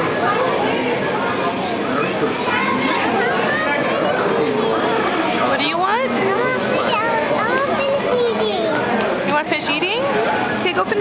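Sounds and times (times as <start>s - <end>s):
children's voices: 2.0s - 5.2s, 6.0s - 9.1s
toddler's high-pitched voice: 6.2s - 8.9s.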